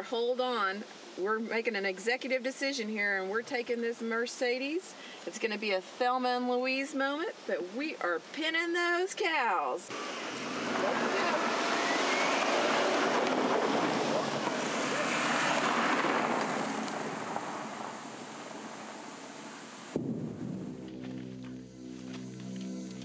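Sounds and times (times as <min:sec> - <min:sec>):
tyres crunching on gravel: 0:10.0 - 0:19.6, 0:20.8 - 0:23.0
eerie background music: 0:20.4 - 0:23.0.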